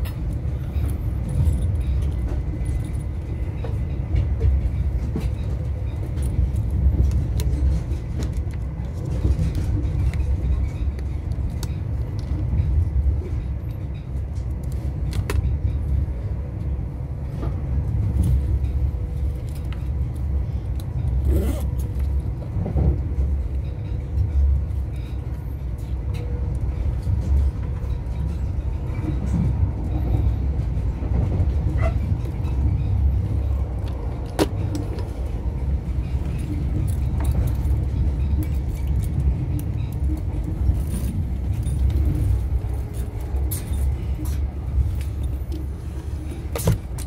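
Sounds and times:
train wheels rumbling on rail: 0.0s - 47.0s.

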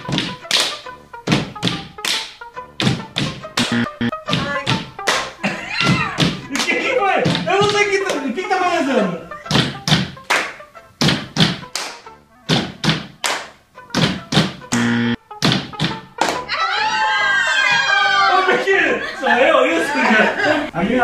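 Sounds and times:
hand slaps and claps rhythm: 0.0s - 8.3s, 9.4s - 16.5s
low buzz: 3.6s - 4.2s, 14.7s - 15.2s
people laughing: 5.4s - 7.2s, 17.0s - 20.8s.

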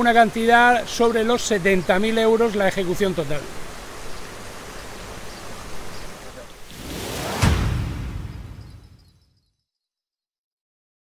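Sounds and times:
fountain water splashing: 0.0s - 8.3s.

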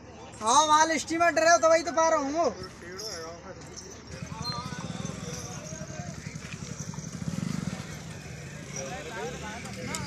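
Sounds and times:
engine idling: 4.0s - 10.0s.

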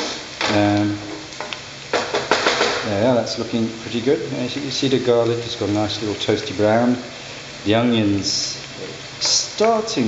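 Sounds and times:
onions sizzling in a frying pan: 0.0s - 10.0s.

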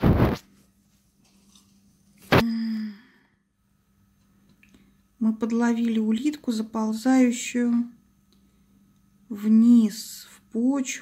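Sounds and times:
woman humming: 2.3s - 3.1s.

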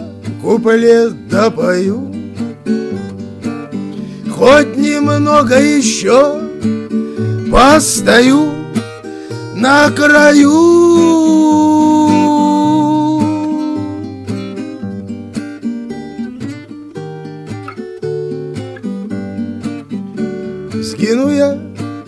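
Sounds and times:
acoustic guitar strumming and picking: 0.0s - 22.0s
man singing held note: 9.6s - 14.0s.

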